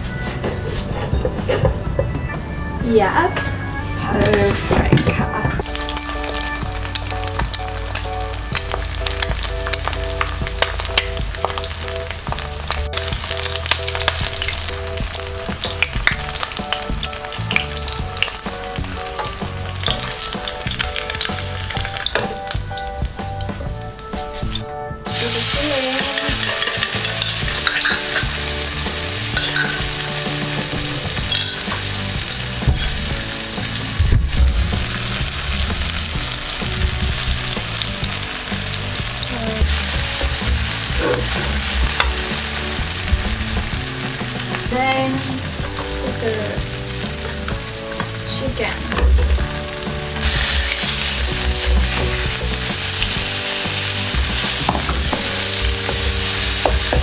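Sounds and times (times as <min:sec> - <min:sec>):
oil sizzling in a wok: 0:05.6 - 0:24.5, 0:25.1 - 0:57.0.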